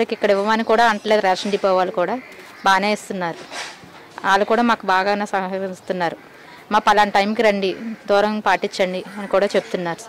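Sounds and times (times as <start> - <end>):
woman speaking: 0.0 - 3.5, 4.2 - 10.0.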